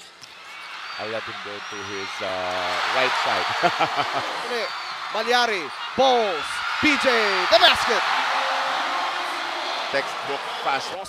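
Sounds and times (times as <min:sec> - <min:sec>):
arena crowd cheering: 0:00.1 - 0:11.0.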